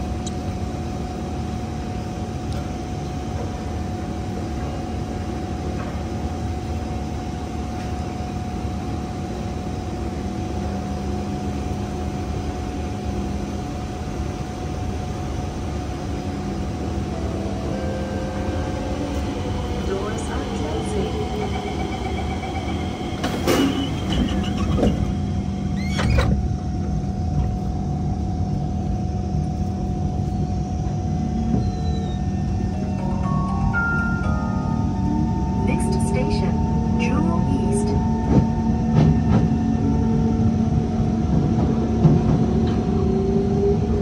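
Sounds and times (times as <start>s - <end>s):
metro train rumbling hum: 0.0s - 44.0s.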